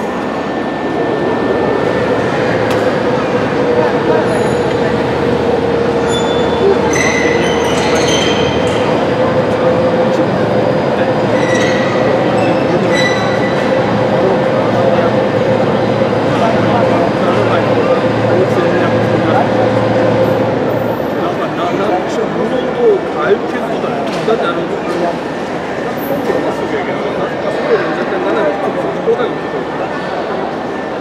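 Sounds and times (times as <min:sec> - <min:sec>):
crowd chatter: 0:00.0 - 0:31.0
overhead crane humming: 0:00.0 - 0:31.0.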